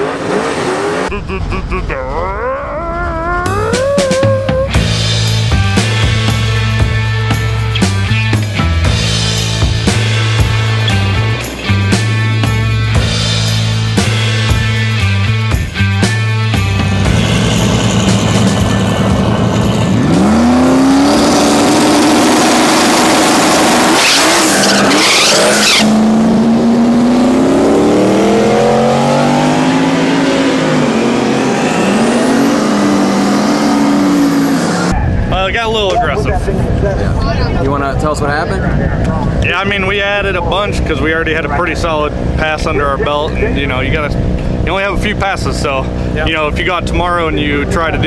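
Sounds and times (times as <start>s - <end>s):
car engine revving: 0.0s - 2.0s, 16.5s - 35.2s, 38.3s - 48.0s
voices: 34.8s - 48.0s.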